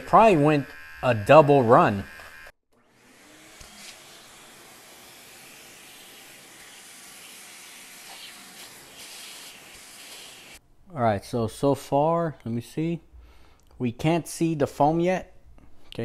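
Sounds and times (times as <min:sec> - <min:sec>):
small vacuum running: 0:00.1 - 0:10.6.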